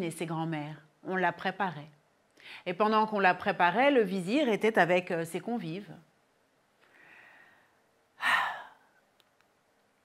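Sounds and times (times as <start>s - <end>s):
woman sighing: 8.2s - 9.0s.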